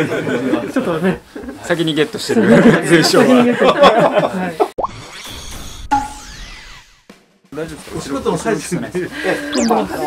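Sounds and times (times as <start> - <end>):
rising blip transition effect: 9.5 - 10.0.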